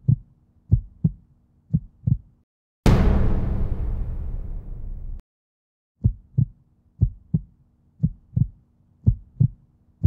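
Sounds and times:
heartbeat thumps: 0.0 - 2.4, 6.0 - 9.6.

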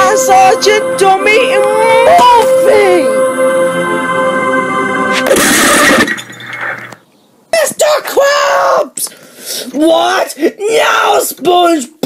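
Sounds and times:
loud crash of something shattering: 5.2 - 6.9.

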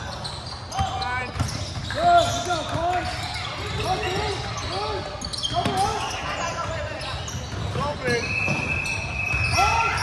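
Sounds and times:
basketball bouncing: 0.4 - 4.5.

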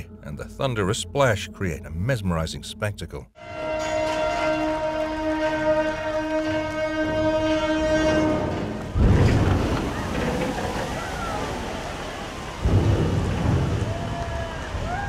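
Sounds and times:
horn long steady note: 0.0 - 9.0
churning water: 3.5 - 15.0
ship splashing into water: 4.3 - 15.0.

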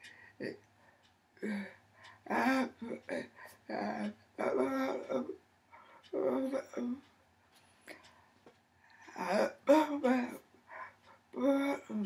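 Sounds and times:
woman making wordless vocal sounds: 2.3 - 5.4, 6.1 - 7.0, 9.2 - 10.4, 11.3 - 12.0.

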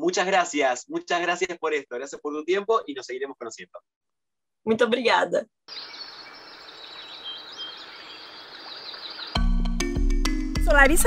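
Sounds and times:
outdoor background hiss: 5.7 - 9.4
small birds chirping: 5.7 - 9.5.

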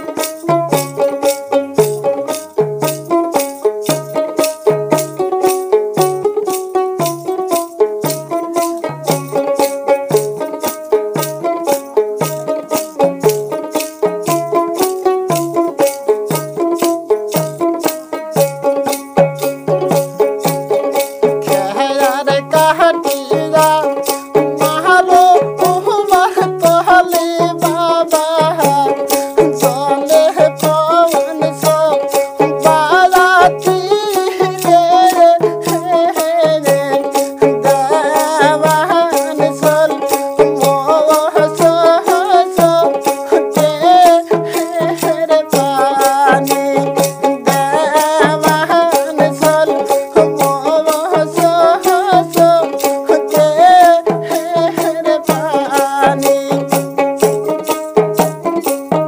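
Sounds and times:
drum beat: 0.0 - 59.0
plucked string melody: 0.0 - 59.0
rattling percussion: 0.0 - 59.0.

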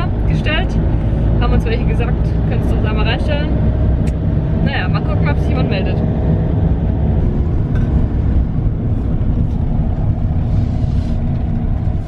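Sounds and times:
engine and road noise rumble: 0.0 - 12.0.

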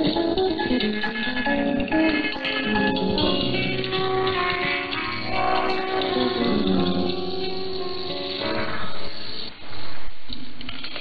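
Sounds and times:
muffled instrumental radio music: 0.0 - 11.0.

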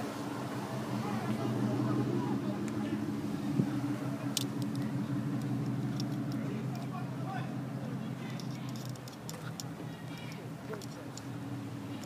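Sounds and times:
car engine idling: 0.0 - 12.0
faint voices: 0.6 - 12.0.

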